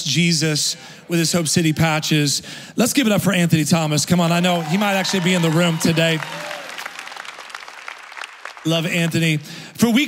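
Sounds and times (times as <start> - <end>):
congregation applauding: 4.4 - 9.6.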